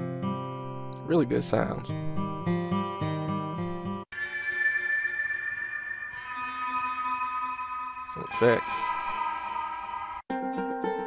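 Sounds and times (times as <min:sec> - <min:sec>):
sustained ambient guitar drone: 0:04.1 - 0:11.0.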